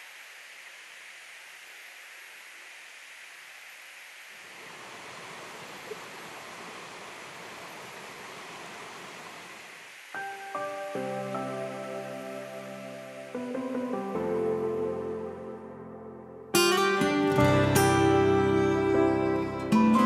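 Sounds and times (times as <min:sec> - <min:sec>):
stream running over rocks: 0:00.0 - 0:15.4
soft outdoor hiss: 0:00.0 - 0:20.0.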